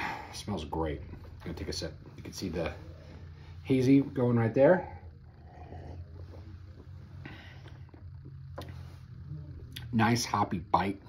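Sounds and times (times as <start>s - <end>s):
steady low hum: 0.0s - 11.0s
breathy exhale: 4.9s - 8.0s.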